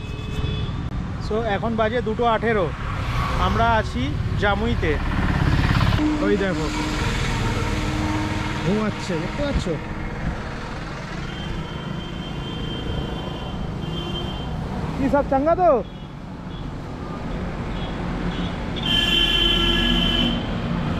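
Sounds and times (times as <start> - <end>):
road noise drone: 0.0 - 20.9.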